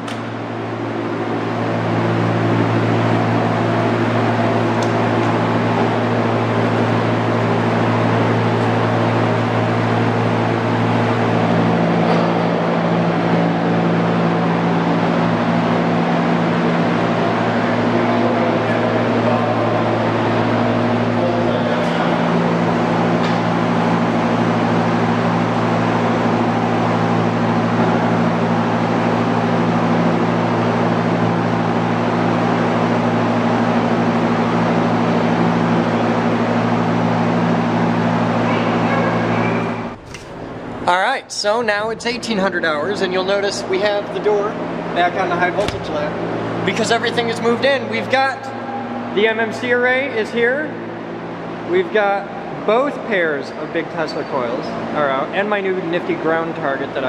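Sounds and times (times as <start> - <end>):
machine motor hum: 0.0 - 57.0.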